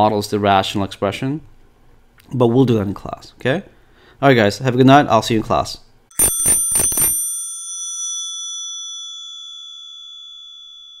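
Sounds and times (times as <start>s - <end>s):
bell chime ringing: 6.1s - 11.0s.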